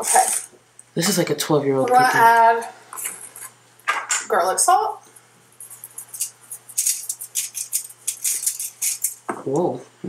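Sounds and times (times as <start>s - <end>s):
salt shaker rattling: 5.6s - 9.3s.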